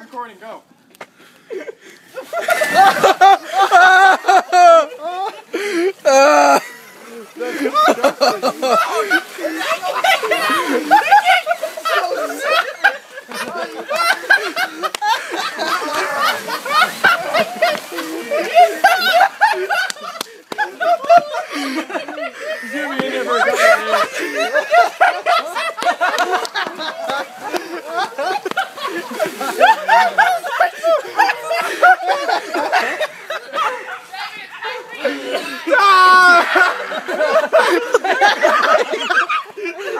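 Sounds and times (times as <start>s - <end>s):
people laughing and exclaiming: 1.4s - 39.9s.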